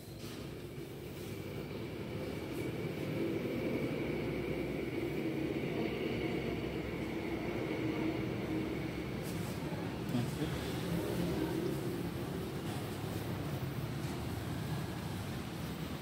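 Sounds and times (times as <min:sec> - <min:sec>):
vehicle engine drone: 0:00.0 - 0:16.0.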